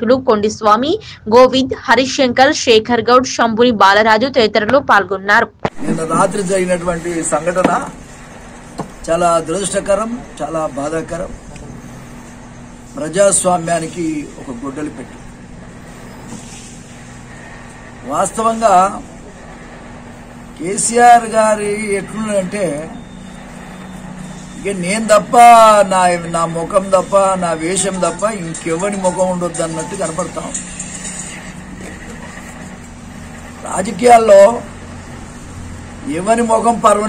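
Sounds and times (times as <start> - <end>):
faint constant tone: 0.0 - 37.0
low background hum: 0.0 - 37.0
low background rumble: 5.7 - 30.6.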